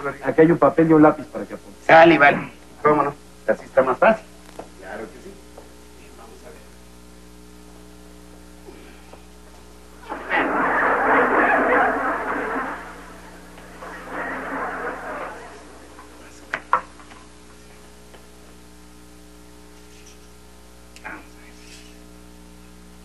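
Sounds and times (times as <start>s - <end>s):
audience laughter: 10.0s - 16.5s.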